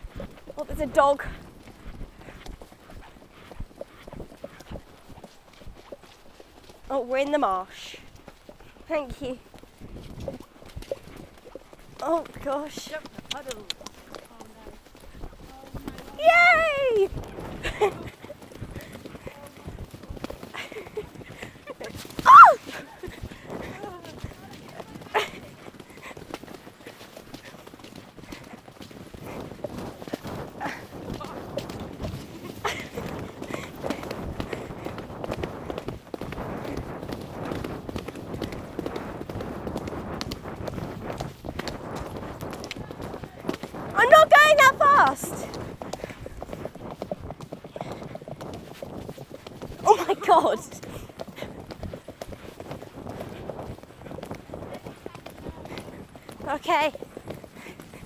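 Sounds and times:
horse hooves on muddy track: 0.0 - 58.0
loud falling cry: 22.2 - 22.6
person shouting or laughing: 22.2 - 22.8.

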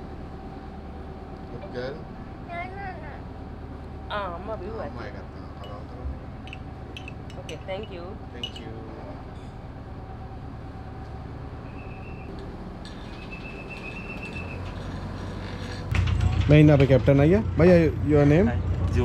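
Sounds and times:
steady low hum: 0.0 - 19.0
metal spoon clinking in cup: 6.5 - 7.7, 8.4 - 8.7.

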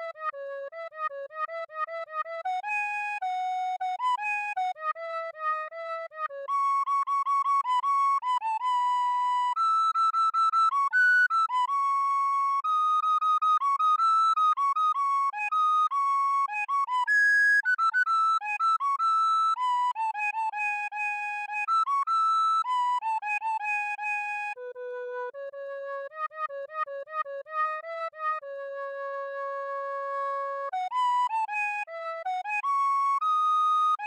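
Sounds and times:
recorder playing a melody: 0.0 - 34.0.

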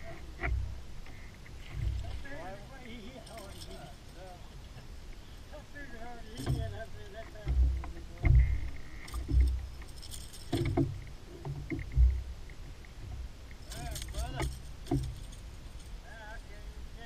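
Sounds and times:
jangling rattle of gear: 1.7 - 4.7, 6.3 - 12.1, 13.6 - 16.0
dull thumps on boat deck: 6.4 - 9.7, 10.5 - 12.3.

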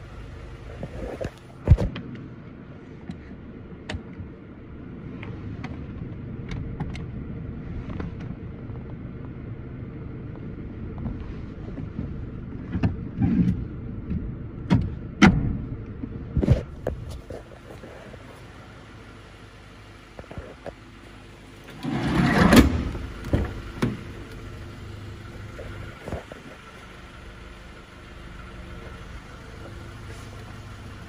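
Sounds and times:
low hum in van cabin: 0.0 - 31.0.

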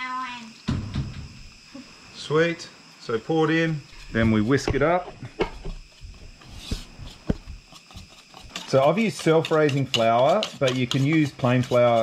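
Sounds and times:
whisk scraping batter in bowl: 5.9 - 12.0
whisk clicking against bowl: 7.8 - 12.0.

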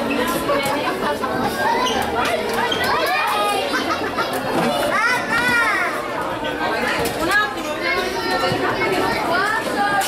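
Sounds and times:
shoppers chattering: 0.0 - 10.0.

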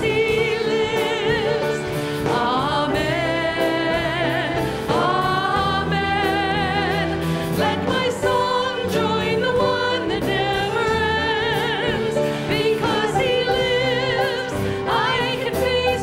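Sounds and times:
full band backing: 0.0 - 16.0
women singing with vibrato: 0.0 - 16.0.

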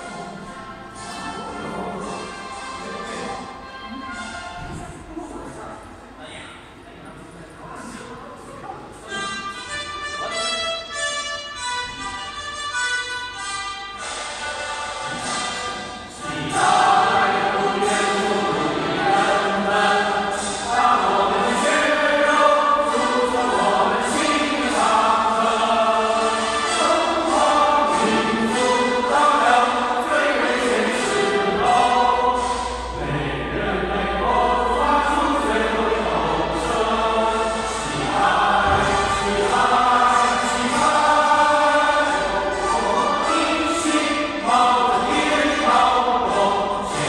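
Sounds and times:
choir singing with accompaniment: 0.0 - 4.8, 11.5 - 47.0.

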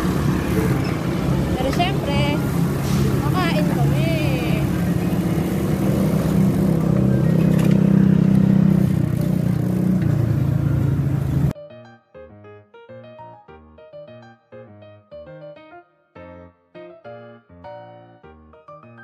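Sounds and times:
vehicle engine running: 0.0 - 11.5
traffic noise: 0.0 - 11.6.

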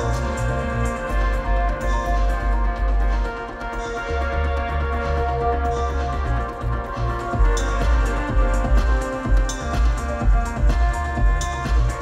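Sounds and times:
deep synth bass: 0.0 - 12.0.

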